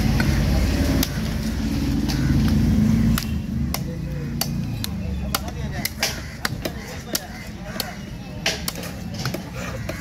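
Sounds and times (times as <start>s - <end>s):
engine running with low rumble: 0.0s - 5.1s.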